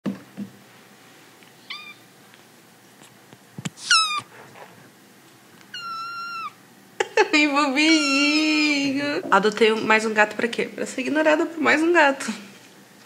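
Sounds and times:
kitten meowing: 1.7 - 2.0, 3.8 - 4.3, 5.7 - 6.6, 7.9 - 8.4.

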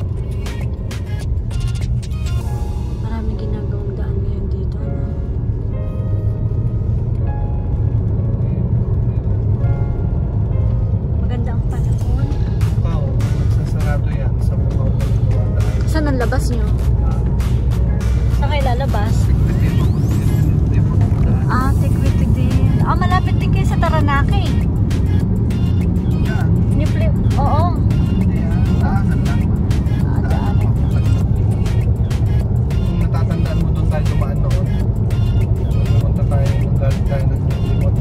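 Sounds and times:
car road and engine drone: 0.0 - 38.0.

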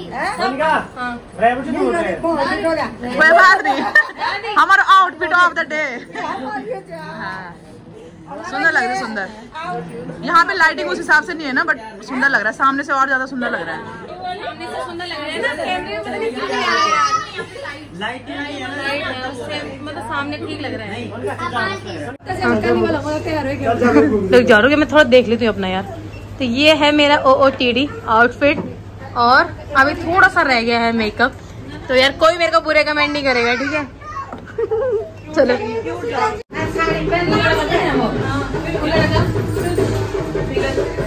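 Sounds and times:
indistinct chatter: 0.0 - 41.0.

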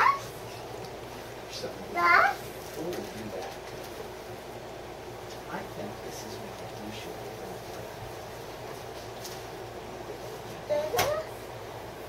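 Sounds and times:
child's high-pitched calls: 0.0 - 0.3.

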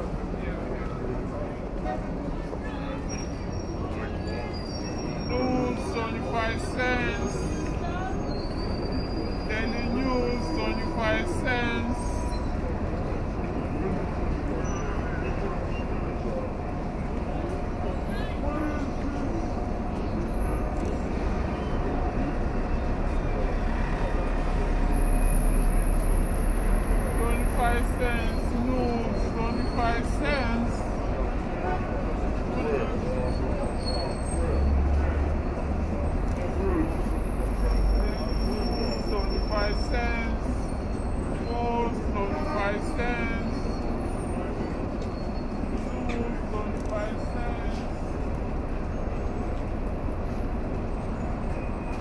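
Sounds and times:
chatter of passers-by: 0.0 - 52.0
crowd of pedestrians: 0.0 - 52.0
traffic rumble: 0.0 - 52.0.

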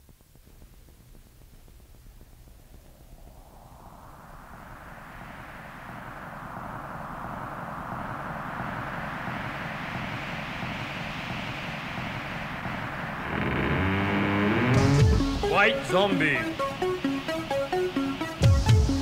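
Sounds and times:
rushing whooshing sound: 3.0 - 18.5
music: 13.8 - 19.0.

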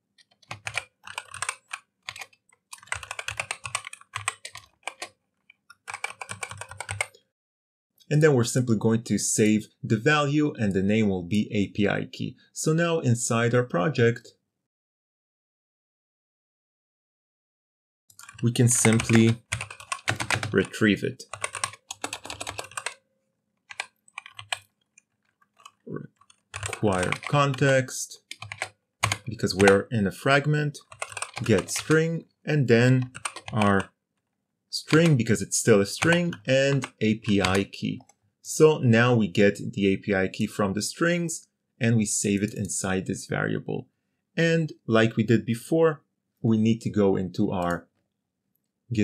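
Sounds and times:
typing on computer keyboard: 0.2 - 7.2, 18.1 - 23.0, 23.7 - 29.8, 30.8 - 32.0, 32.9 - 33.8, 34.8 - 35.4, 36.0 - 38.2.

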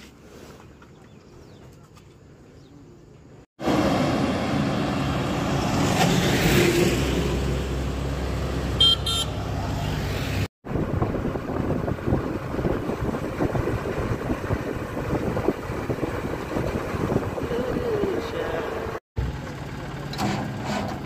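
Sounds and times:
road and wind noise: 0.0 - 21.0
heavy truck passing: 3.6 - 21.0
vehicle horn toot: 8.8 - 9.4.

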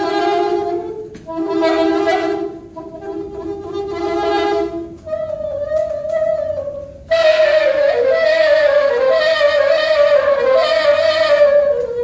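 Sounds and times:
soprano saxophone: 0.0 - 12.0.

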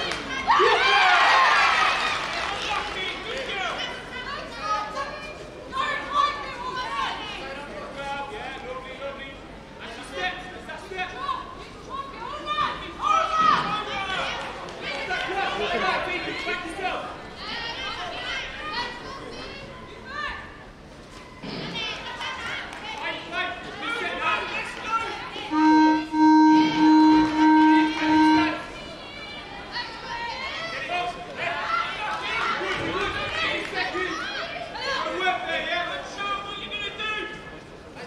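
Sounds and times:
crowd chatter in a hall: 0.0 - 38.0.

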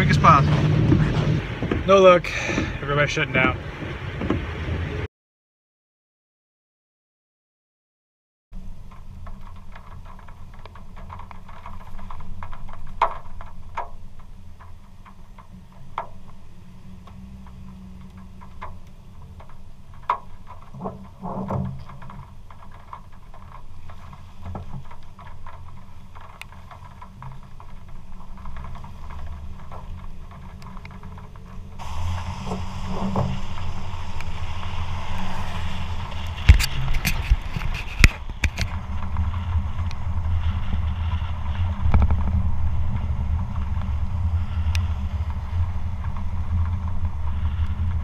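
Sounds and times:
vehicle rumble on wet road: 0.0 - 5.1, 8.6 - 48.0.

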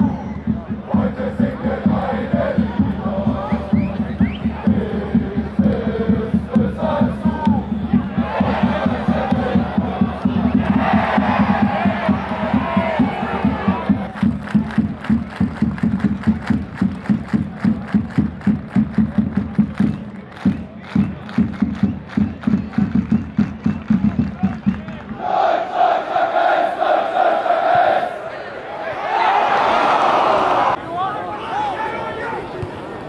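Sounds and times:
football supporters chanting: 0.0 - 14.2, 25.1 - 30.8
steady drum beat: 0.0 - 25.1.

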